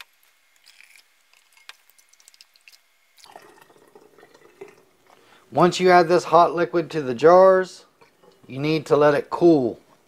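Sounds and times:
syrup trickling into jar: 0.6 - 4.9.

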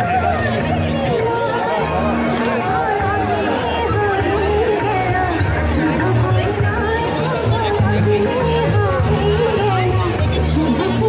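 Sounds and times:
crowd talking: 0.0 - 11.0
music with bass line: 0.0 - 11.0.

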